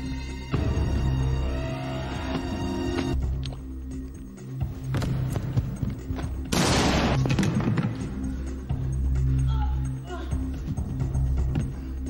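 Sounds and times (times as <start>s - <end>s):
dramatic film score: 0.0s - 12.0s.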